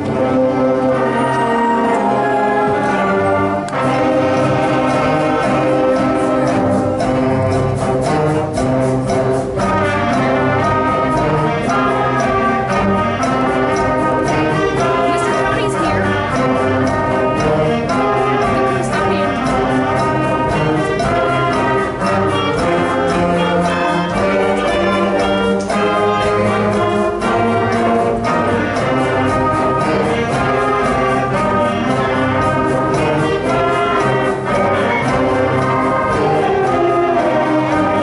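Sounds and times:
brass and woodwinds: 0.0 - 38.0
percussion beats: 0.0 - 38.0.

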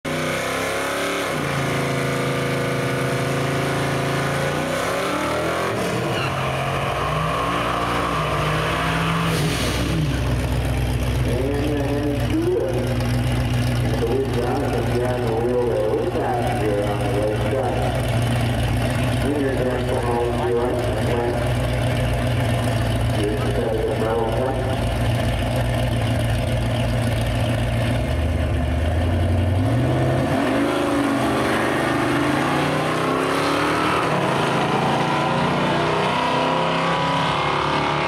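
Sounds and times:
car engines revving: 0.1 - 38.0
engines idling: 1.5 - 36.2
tyres spinning on pavement: 10.1 - 19.3.

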